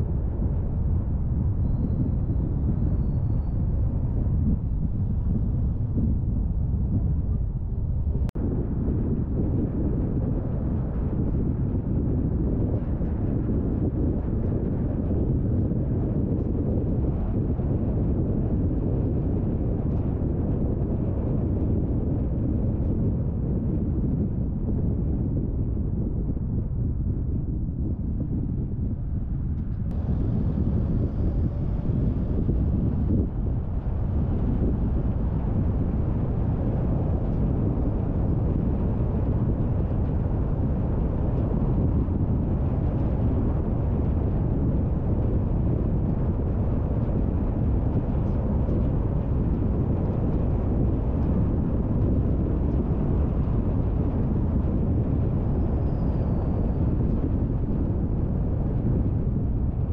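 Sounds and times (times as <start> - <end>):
car road and wind noise: 0.0 - 59.9.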